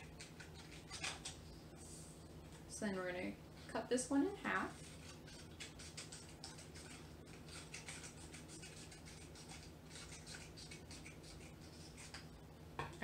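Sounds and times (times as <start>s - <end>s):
scissors cutting paper: 0.1s - 1.4s, 4.8s - 12.2s.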